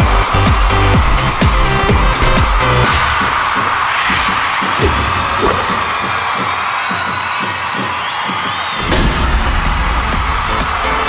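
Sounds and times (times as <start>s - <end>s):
crowd cheering and shouting: 0.0s - 11.0s
pop dance music: 0.0s - 11.0s.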